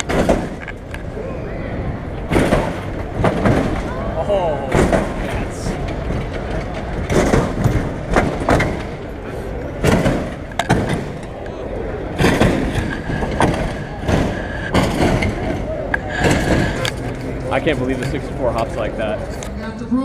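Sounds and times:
car hydraulics thumps and bangs: 0.0 - 0.8, 2.3 - 3.9, 4.7 - 9.1, 9.8 - 11.4, 12.2 - 17.0
crowd chatter: 0.0 - 20.0.

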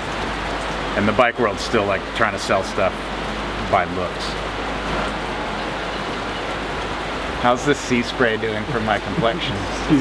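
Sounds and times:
steady rain hiss: 0.0 - 10.0.

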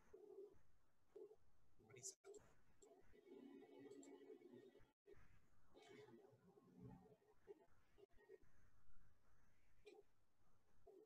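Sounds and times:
faint muffled news speech: 1.8 - 3.0.

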